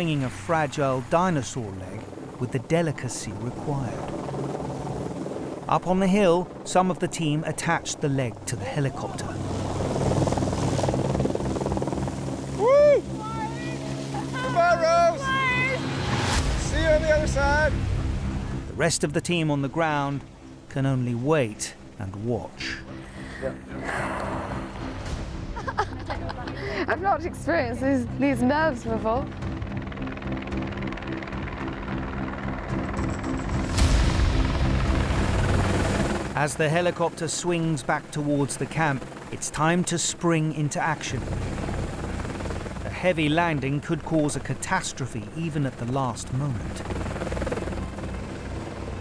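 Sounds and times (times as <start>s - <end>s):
helicopter droning: 0.0s - 49.0s.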